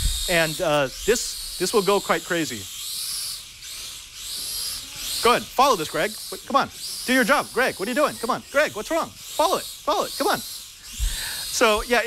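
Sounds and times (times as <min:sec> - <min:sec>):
quadcopter propeller hiss: 0:00.0 - 0:12.0.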